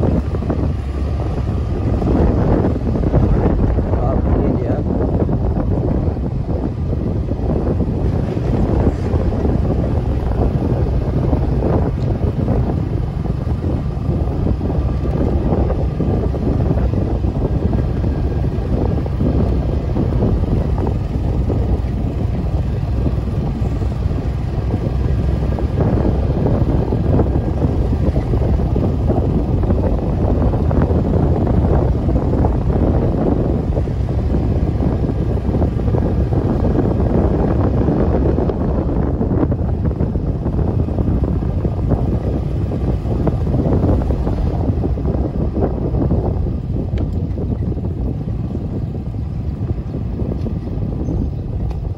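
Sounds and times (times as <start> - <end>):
motorcycle running: 0.0 - 51.9
wind rumble on microphone: 0.0 - 51.9.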